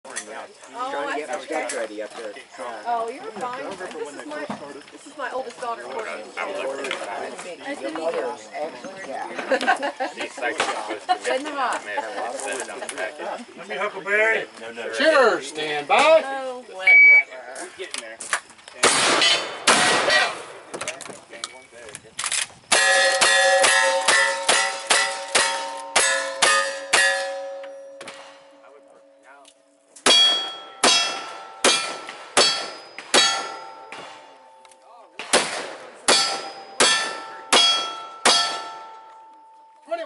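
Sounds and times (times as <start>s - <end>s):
rapid gunshots: 18.8s - 20.5s, 35.2s - 38.6s
steel plate targets ringing: 22.7s - 29.2s, 30.0s - 34.6s, 36.1s - 39.8s.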